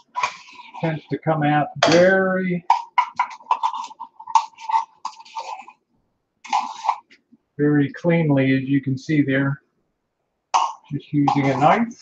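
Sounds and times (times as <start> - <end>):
knife scraping metal can: 0.0 - 1.0, 2.7 - 5.8, 6.4 - 7.1, 11.2 - 12.0.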